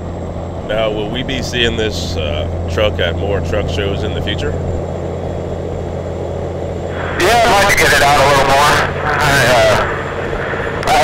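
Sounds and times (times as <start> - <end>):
vehicle engine and road drone: 0.0 - 11.0
man talking: 0.7 - 4.6, 7.0 - 10.0, 10.8 - 11.0.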